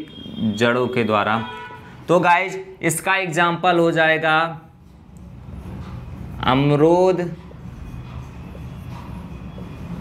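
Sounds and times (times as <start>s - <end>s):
marker pen writing on board: 7.3s - 10.0s.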